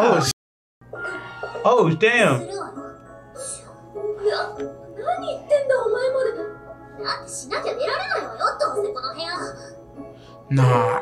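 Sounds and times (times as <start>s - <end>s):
soft background music: 0.0s - 11.0s
girl speaking: 2.4s - 9.7s.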